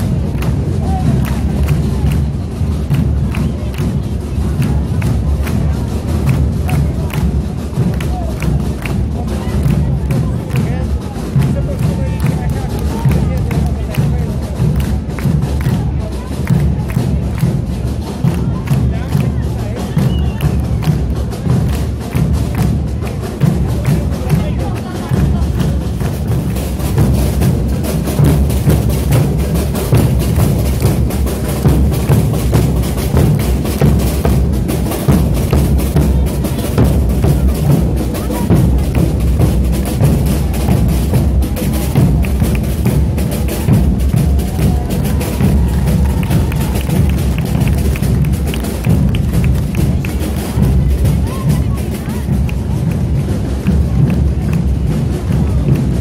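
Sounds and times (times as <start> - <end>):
bass drums drumming: 0.0 - 56.0
snare drums: 0.0 - 56.0.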